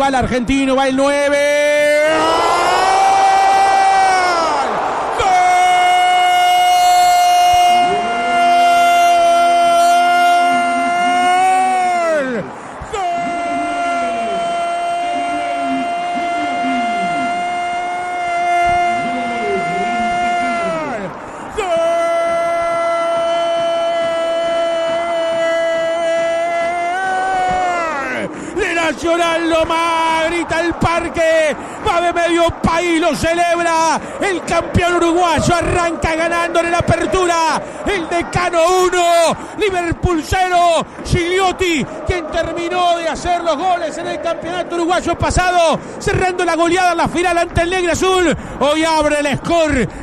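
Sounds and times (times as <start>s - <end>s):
commentator shouting goal: 0.0s - 49.9s
voices shouting: 1.9s - 47.2s.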